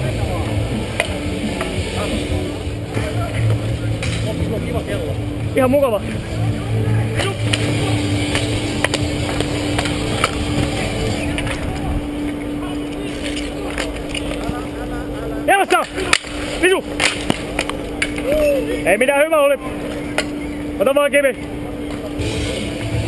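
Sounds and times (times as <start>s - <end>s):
low hum: 0.0s - 23.0s
hockey sticks clacking on paving: 0.9s - 4.5s, 7.2s - 14.7s, 15.7s - 18.5s
players shouting: 5.8s - 14.7s, 15.4s - 19.8s.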